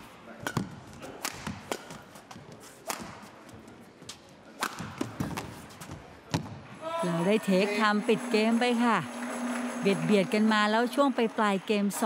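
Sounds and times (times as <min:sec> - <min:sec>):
large hall ambience: 0:00.0 - 0:12.0
rackets striking shuttlecock: 0:00.4 - 0:03.3, 0:04.5 - 0:05.6
footwork on court: 0:00.4 - 0:07.0.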